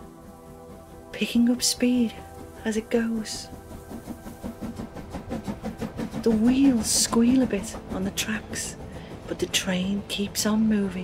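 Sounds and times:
soft background music: 0.0s - 11.0s
steam locomotive chugging: 0.0s - 11.0s.

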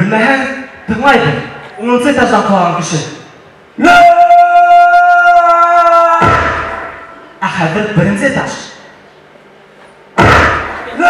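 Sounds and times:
loud sudden thump: 6.2s - 7.0s, 10.2s - 10.9s.

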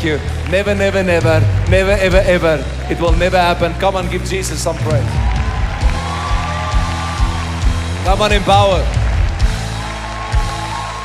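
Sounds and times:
steady bass line: 0.0s - 11.0s.

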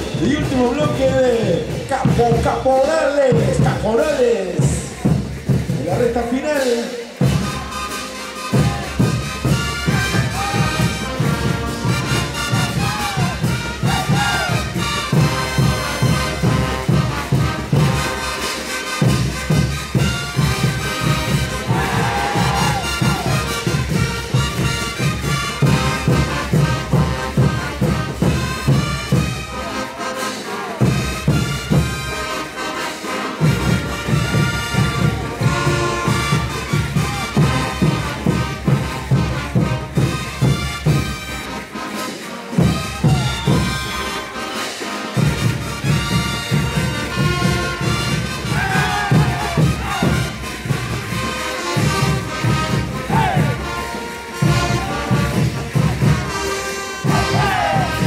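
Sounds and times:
low drum beat: 0.0s - 6.4s, 8.5s - 18.4s, 19.0s - 29.4s, 45.2s - 58.0s
brass band playing: 0.0s - 58.0s.

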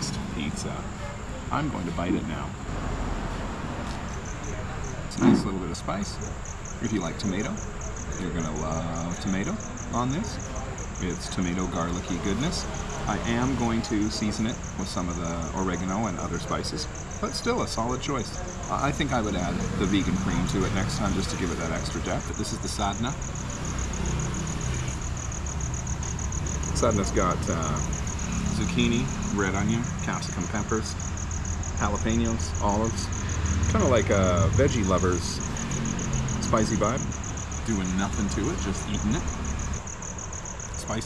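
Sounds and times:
crickets chirping: 0.0s - 41.0s
steady background hiss: 0.0s - 41.0s.

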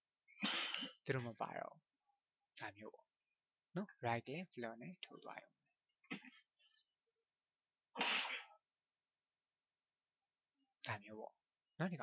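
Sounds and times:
person breathy burst: 0.3s - 1.0s, 7.9s - 8.6s.

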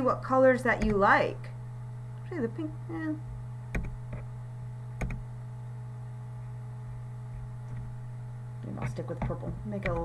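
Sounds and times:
steady electrical hum: 0.0s - 10.0s
computer mouse clicks: 5.0s - 5.2s.

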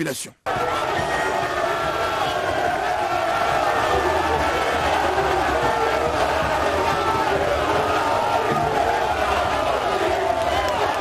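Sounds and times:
crowd chanting: 0.4s - 11.0s
large crowd cheering and shouting: 0.4s - 11.0s.

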